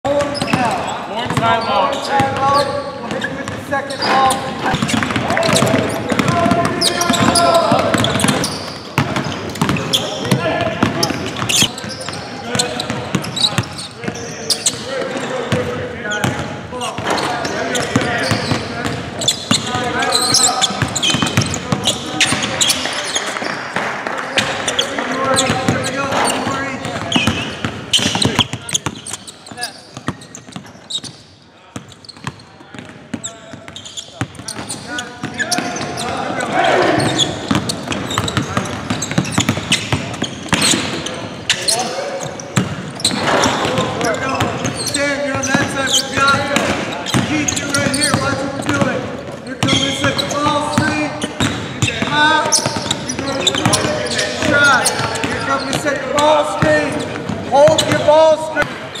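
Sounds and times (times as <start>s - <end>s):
basketballs bouncing on hardwood: 0.1s - 31.2s, 31.8s - 36.3s, 36.9s - 59.0s
indistinct voices calling out: 35.4s - 38.2s.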